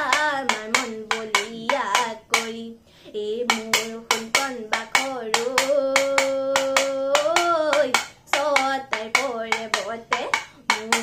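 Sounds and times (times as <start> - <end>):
bamboo clapper clacking: 0.0 - 2.6, 3.4 - 11.0.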